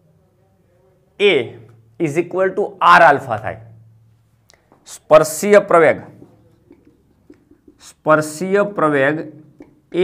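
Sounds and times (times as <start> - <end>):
marker writing on whiteboard: 6.0 - 8.1.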